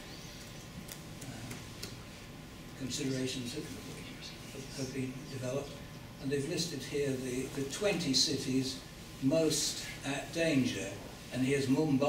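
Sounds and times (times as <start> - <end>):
background hiss and hum: 0.0 - 12.0.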